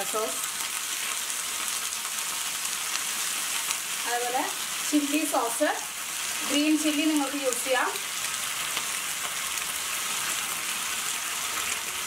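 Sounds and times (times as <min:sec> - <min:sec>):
vegetables sizzling in hot oil: 0:00.0 - 0:12.0.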